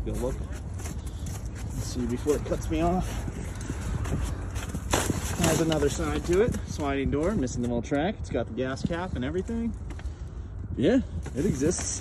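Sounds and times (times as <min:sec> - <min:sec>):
footsteps on snowy leafy ground: 0:00.0 - 0:07.4.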